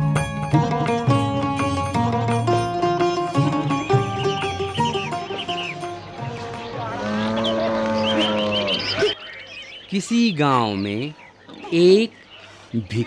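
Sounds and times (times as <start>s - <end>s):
sitar music: 0.0s - 10.7s
cow mooing: 6.7s - 9.2s.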